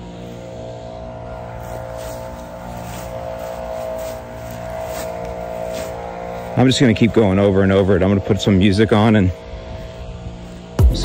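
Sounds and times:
lawn mower engine humming: 0.0 - 11.0.

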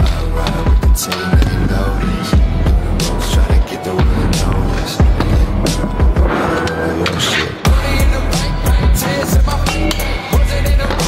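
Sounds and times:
hip-hop music with heavy bass: 0.0 - 11.0.

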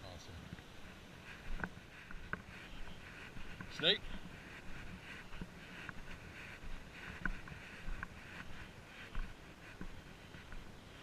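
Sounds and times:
footsteps crunching on dirt: 0.0 - 11.0.

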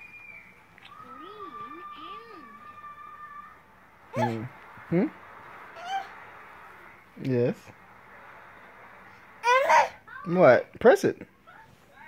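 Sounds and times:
baby squealing: 0.9 - 4.5, 5.8 - 6.2, 9.4 - 10.0.

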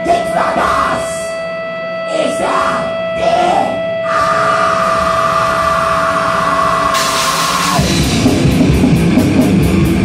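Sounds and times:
electric guitar feedback whine: 0.0 - 10.0.

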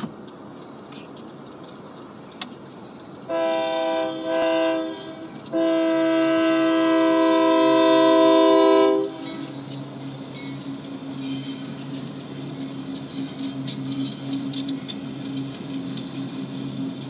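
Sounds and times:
freight train rumble: 0.0 - 17.0
locomotive horn blasts: 3.3 - 9.3.

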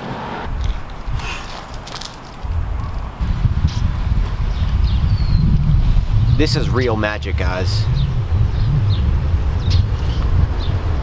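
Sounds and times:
wind buffeting microphone: 0.4 - 11.0.

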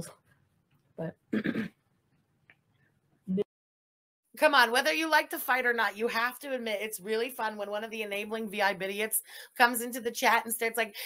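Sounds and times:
woman clearing her throat: 1.3 - 1.8.

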